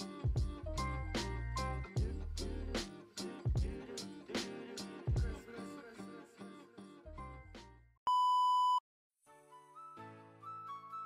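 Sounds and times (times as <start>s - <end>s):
background music: 0.0s - 7.9s, 9.3s - 11.0s
electronic beep: 8.1s - 8.8s.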